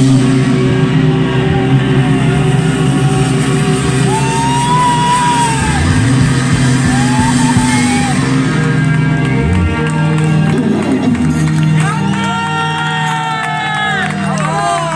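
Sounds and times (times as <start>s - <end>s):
live rock band sustained chords: 0.0s - 14.9s.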